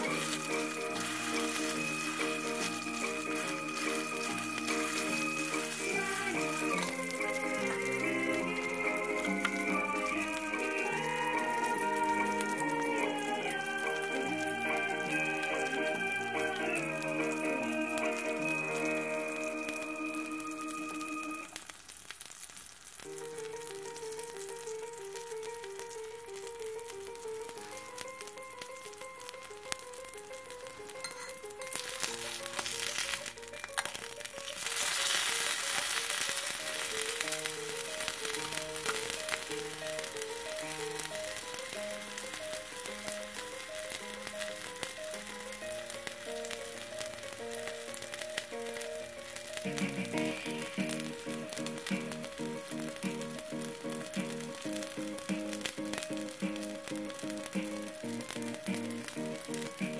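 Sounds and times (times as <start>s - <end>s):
simple background music: 0.0s - 21.6s, 36.1s - 59.9s
steak sizzling in frying pan: 0.0s - 59.9s.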